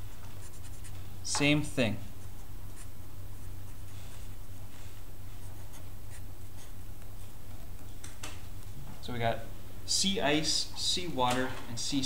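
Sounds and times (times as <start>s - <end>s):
marker scratching on paper: 0.0s - 1.0s, 2.2s - 4.4s, 5.3s - 6.8s
steady low hum: 0.0s - 12.0s.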